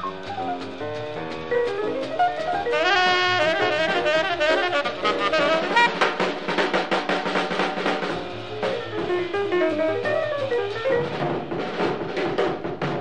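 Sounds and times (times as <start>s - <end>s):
drum kit with cymbals: 0.0s - 13.0s
piano: 0.0s - 13.0s
tenor saxophone: 2.7s - 6.2s.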